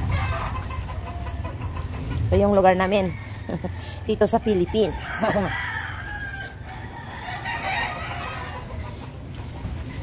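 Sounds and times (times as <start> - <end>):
low rumble of street noise: 0.0 - 10.0
rooster crowing: 3.0 - 8.7.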